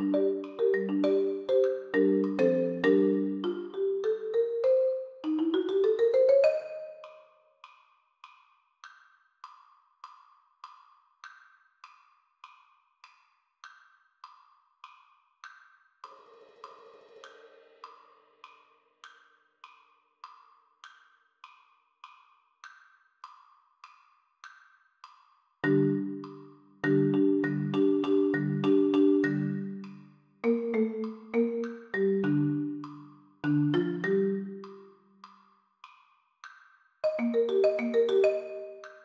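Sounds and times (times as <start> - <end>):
marimba notes: 0.0 - 7.3, 25.6 - 34.9, 37.0 - 39.0.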